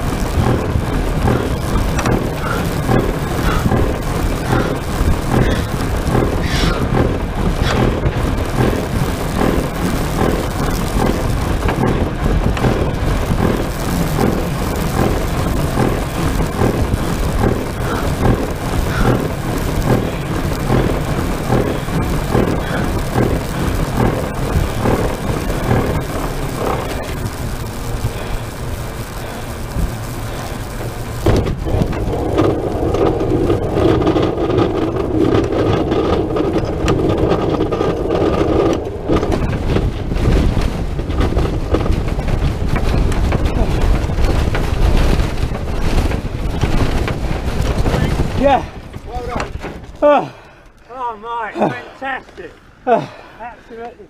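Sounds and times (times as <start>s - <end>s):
wind rushing: 0.0s - 50.3s
fast clicks: 0.0s - 52.8s
droning hum: 0.0s - 54.0s.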